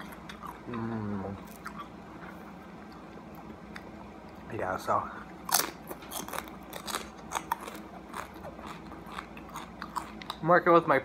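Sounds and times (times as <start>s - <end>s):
chewing crunchy chip: 5.4s - 10.6s.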